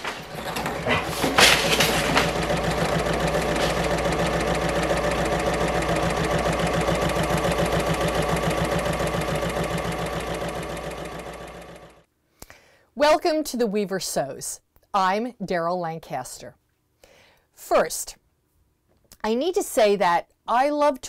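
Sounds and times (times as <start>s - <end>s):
sewing machine stitching: 0.0s - 12.0s.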